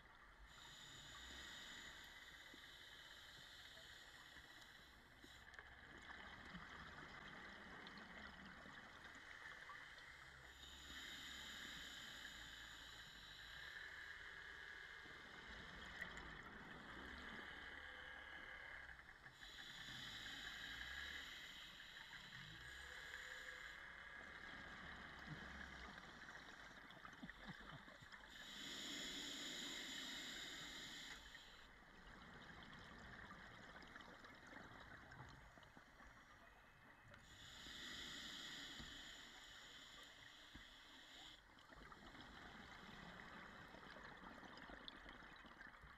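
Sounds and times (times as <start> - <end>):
underwater breath bubbles: 10.4 - 36.6.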